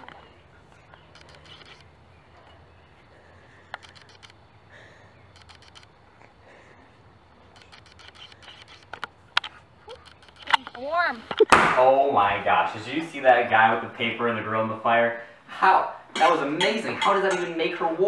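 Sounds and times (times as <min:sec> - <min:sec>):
sharp clicks: 0:00.9 - 0:01.9, 0:03.7 - 0:04.4, 0:05.3 - 0:06.0, 0:07.5 - 0:11.6.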